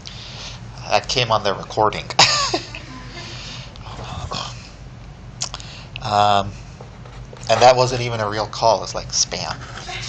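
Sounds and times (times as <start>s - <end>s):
person laughing softly: 2.2s - 4.6s.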